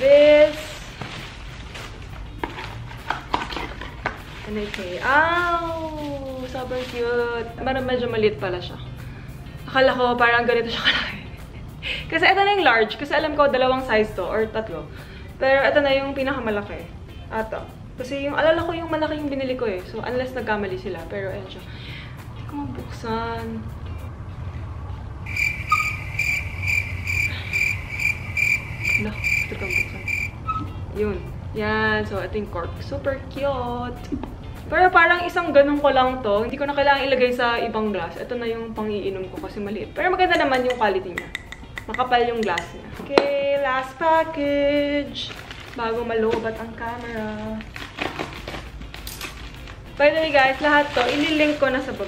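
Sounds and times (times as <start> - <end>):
soft background music: 0.0 - 27.2, 28.3 - 52.0
cricket chirping: 25.2 - 30.6
plastic package crinkling: 45.2 - 46.0, 47.0 - 52.0.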